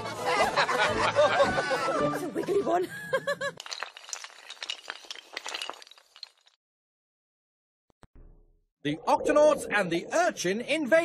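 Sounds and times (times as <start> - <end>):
glassy clinks and tinkles: 3.6 - 6.6.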